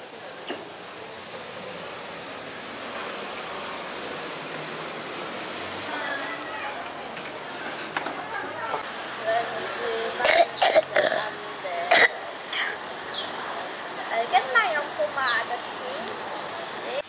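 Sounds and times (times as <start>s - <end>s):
faint indistinct voices: 0.0s - 17.0s
street noise: 0.0s - 17.0s.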